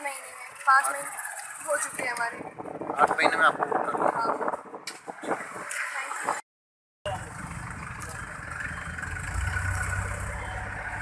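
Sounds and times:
people talking: 0:00.0 - 0:02.4
vehicle engine rumbling: 0:00.0 - 0:06.4, 0:07.0 - 0:11.0.

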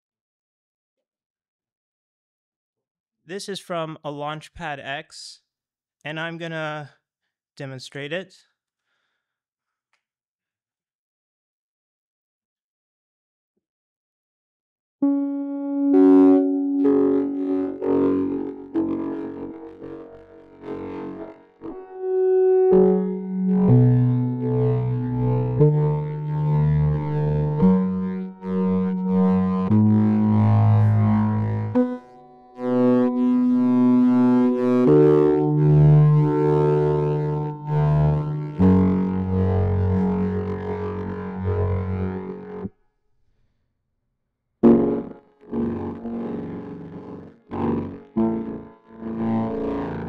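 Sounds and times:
synthesizer notes and chords: 0:15.0 - 0:42.7, 0:44.6 - 0:50.0.

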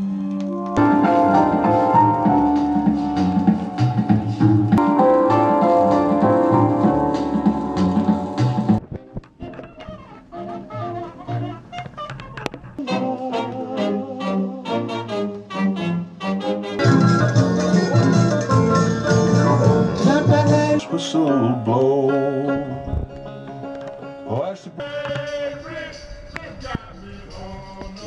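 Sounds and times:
jazz with brass and piano: 0:00.0 - 0:20.9.

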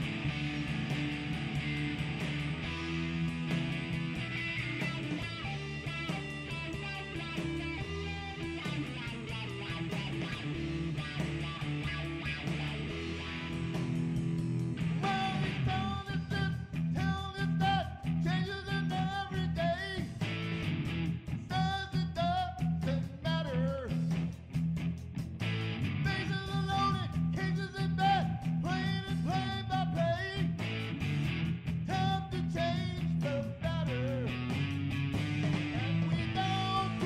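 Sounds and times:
lead guitar bending notes: 0:00.0 - 0:16.2
rock band playing: 0:00.0 - 0:37.0.

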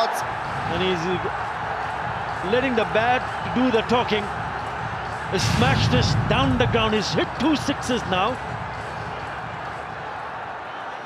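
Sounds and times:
stadium crowd hubbub: 0:00.0 - 0:11.0.

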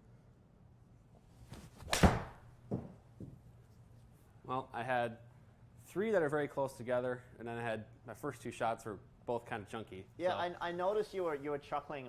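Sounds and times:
golf club hitting ball: 0:01.8 - 0:03.0.

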